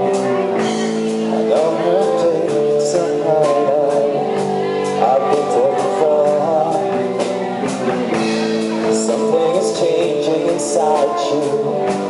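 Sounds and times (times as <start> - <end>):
drums: 0.0 - 12.0
electric guitar: 0.0 - 12.0
man singing into a microphone: 0.0 - 12.0.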